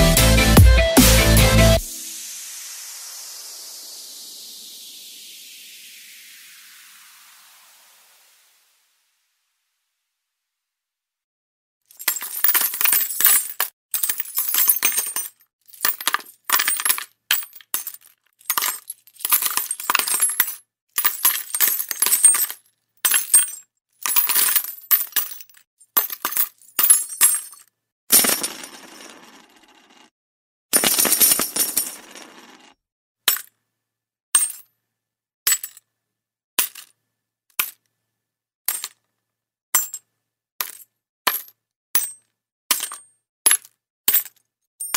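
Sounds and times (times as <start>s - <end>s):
metal coins clinking: 11.9s - 27.6s, 28.2s - 30.0s, 30.8s - 32.7s.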